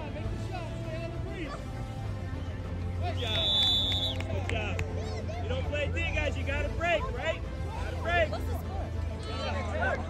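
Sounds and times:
children and adults chattering and shouting: 0.0s - 3.3s, 4.3s - 10.0s
referee's whistle: 3.1s - 4.3s.

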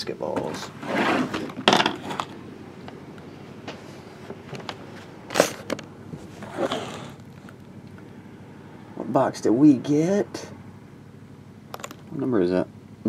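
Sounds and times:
loud rustling scrapes: 0.6s - 2.4s, 4.8s - 7.5s.

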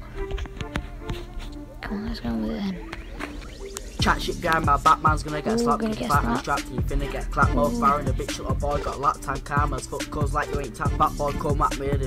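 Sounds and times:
hip hop beat with bass kicks: 3.0s - 12.0s
young man rapping: 4.0s - 12.0s.

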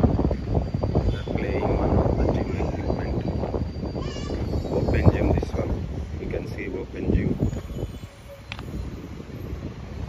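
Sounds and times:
wind buffeting a microphone: 0.0s - 10.0s.

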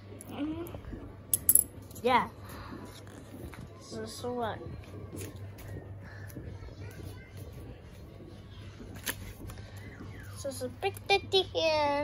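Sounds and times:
faint murmured voice: 2.7s - 10.4s.

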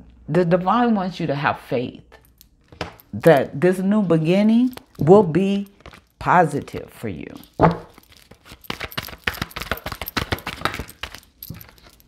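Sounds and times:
cards being shuffled: 5.7s - 12.0s.

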